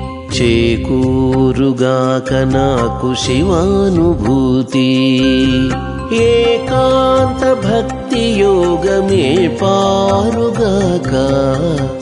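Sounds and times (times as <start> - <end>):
instrumental accompaniment: 0.0 - 12.0
person singing devotional song: 0.0 - 12.0.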